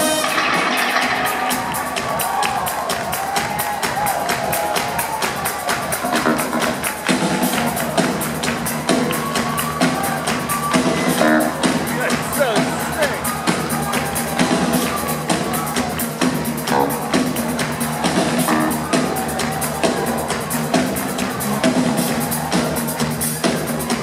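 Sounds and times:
drum kit beat: 0.0 - 24.0.

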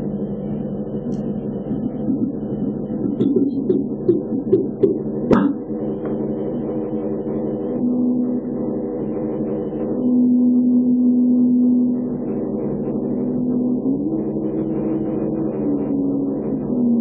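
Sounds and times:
low drone hum: 0.0 - 17.0.

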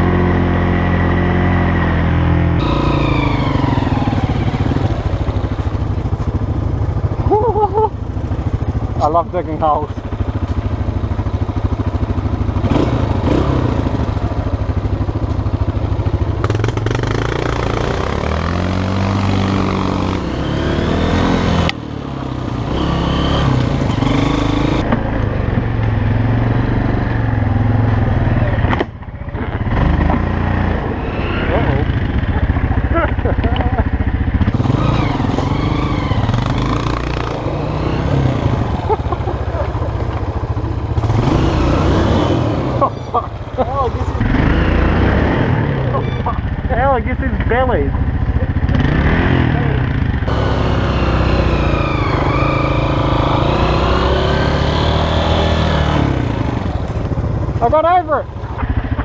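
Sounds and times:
dirt bike engine: 0.0 - 59.0
quad bike engine: 0.0 - 59.0.

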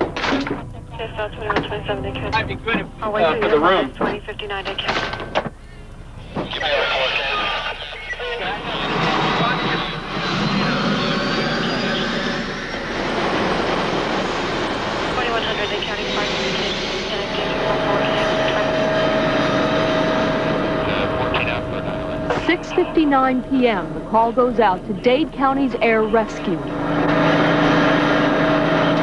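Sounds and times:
high turbine whine: 0.0 - 29.0
helicopter engine and rotor: 8.5 - 29.0.

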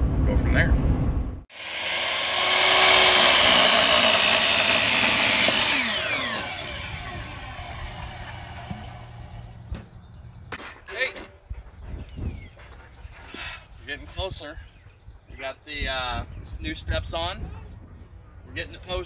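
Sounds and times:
miter saw cutting wood: 1.5 - 9.7.

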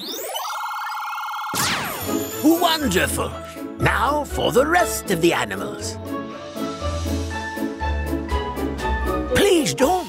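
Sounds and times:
electronic cartoon machine whine: 0.0 - 2.4.

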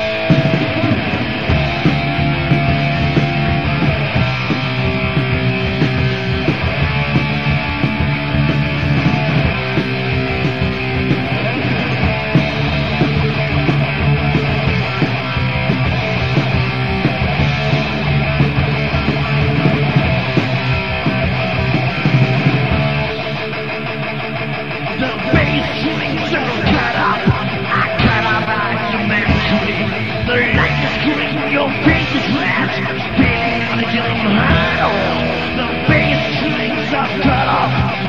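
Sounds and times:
bass guitar: 0.0 - 38.0
distorted electric guitars: 0.0 - 38.0
drum kit: 0.0 - 38.0.

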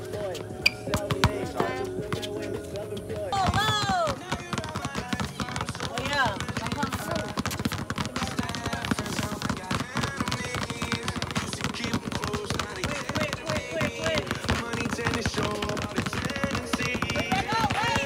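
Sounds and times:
basketballs dribbled on asphalt: 0.0 - 18.0
music with vocals: 0.0 - 18.0.

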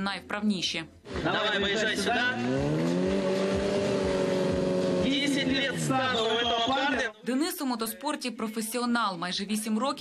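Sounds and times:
motorcycle engine revving: 1.1 - 6.3.

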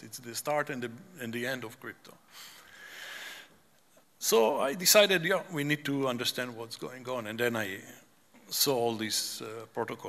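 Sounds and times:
man breathing in through nose: 2.3 - 3.6.

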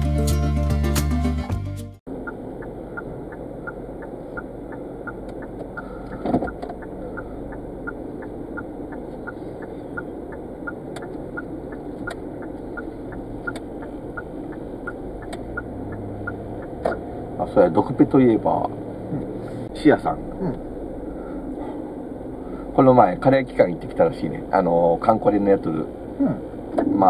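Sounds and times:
light ticking: 2.1 - 17.1
car engine and tyre rumble: 2.1 - 27.0.

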